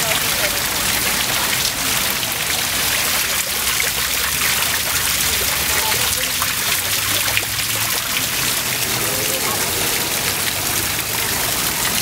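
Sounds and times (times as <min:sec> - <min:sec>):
water trickling and spattering: 0:00.0 - 0:12.0.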